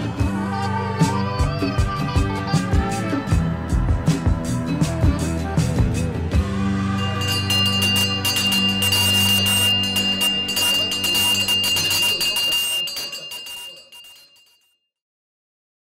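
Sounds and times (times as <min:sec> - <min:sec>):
music track: 0:00.0 - 0:14.2
small bar bell ringing rapidly: 0:07.0 - 0:14.8.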